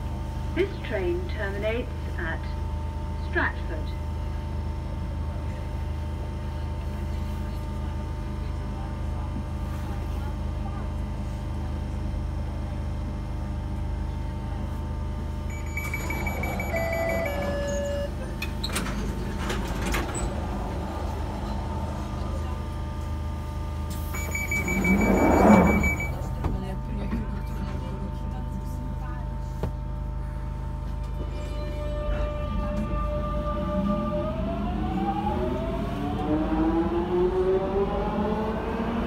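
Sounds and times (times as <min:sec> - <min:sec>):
train rumbling inside carriage: 0:00.0 - 0:39.0
brief whining tones: 0:24.1 - 0:26.2.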